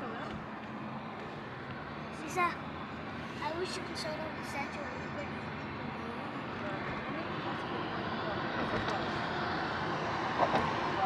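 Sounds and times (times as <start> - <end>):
car road noise at highway speed: 0.0 - 11.0.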